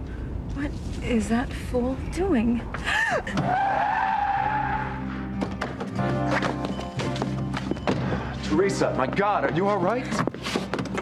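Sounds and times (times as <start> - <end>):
car tyres squealing: 3.3 - 5.1.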